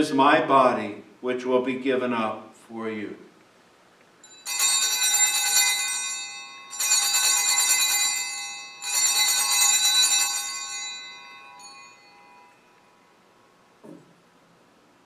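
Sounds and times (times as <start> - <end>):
altar bells jangling: 4.2 - 13.1.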